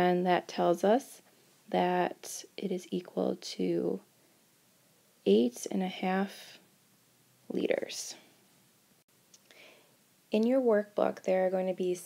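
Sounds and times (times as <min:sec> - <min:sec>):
faint short breath: 0:09.5 - 0:10.0.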